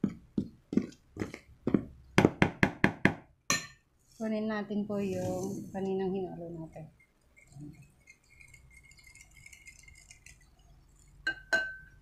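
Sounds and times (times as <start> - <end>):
whisk clinking in ceramic bowl: 7.4 - 12.0.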